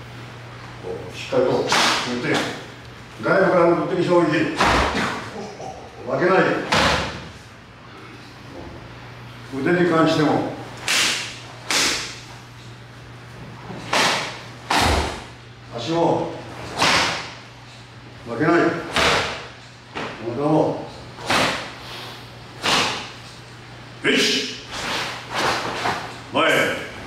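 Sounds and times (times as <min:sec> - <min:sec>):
open-hand slaps on body: 0:01.7 - 0:02.5, 0:10.8 - 0:12.2, 0:13.8 - 0:15.2, 0:16.8 - 0:17.3, 0:21.2 - 0:21.7, 0:22.6 - 0:23.1.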